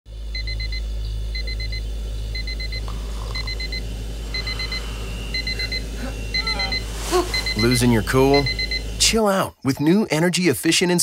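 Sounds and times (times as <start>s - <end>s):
steady low hum: 0.1s - 9.6s
digital alarm clock beeping: 0.3s - 9.2s.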